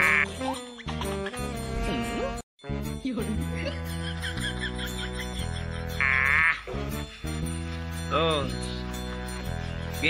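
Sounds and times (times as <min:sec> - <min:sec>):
background music with low notes: 0:00.0 - 0:10.0.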